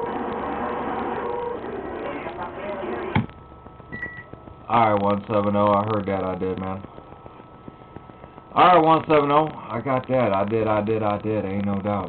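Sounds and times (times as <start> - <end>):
distorted radio static signal: 0.0 - 12.0.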